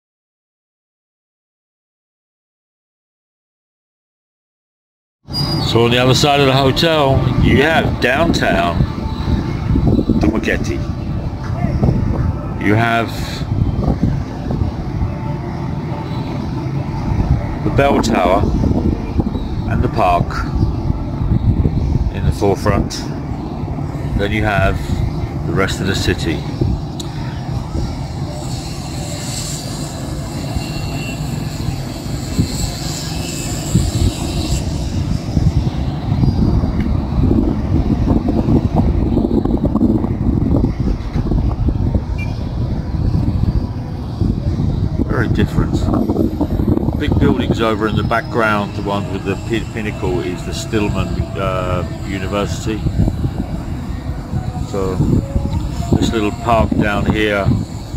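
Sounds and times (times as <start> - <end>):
city street traffic rumble: 5.3 - 57.9
wind buffeting microphone: 5.3 - 57.9
faint thin tone: 28.3 - 34.8.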